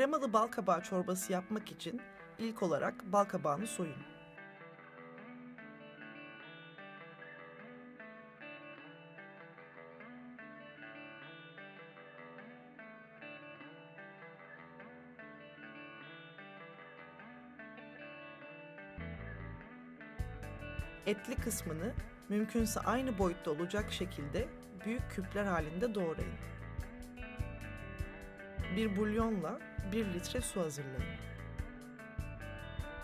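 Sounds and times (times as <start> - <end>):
plucked guitar music: 0.0 - 33.0
bass notes: 19.0 - 19.6, 20.2 - 33.0.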